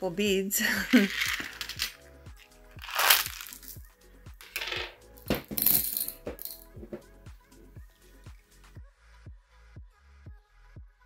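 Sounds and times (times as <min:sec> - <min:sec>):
background music with steady beat: 0:00.0 - 0:11.0
beads clattering into glass jar: 0:00.6 - 0:02.0, 0:02.8 - 0:03.8, 0:04.4 - 0:07.0.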